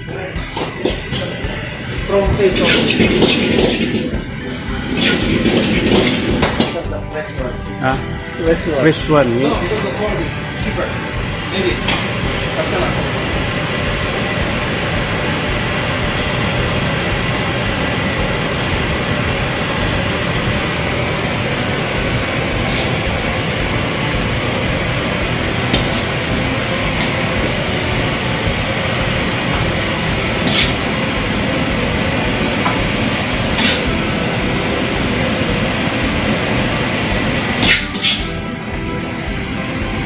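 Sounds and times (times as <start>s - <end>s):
gas burner roaring: 0.0s - 40.0s
kitchen extraction fan: 0.0s - 40.0s.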